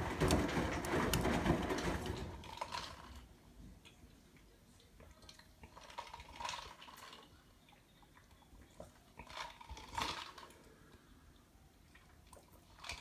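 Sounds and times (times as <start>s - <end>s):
clothes tumbling in washing machine: 0.0s - 3.3s.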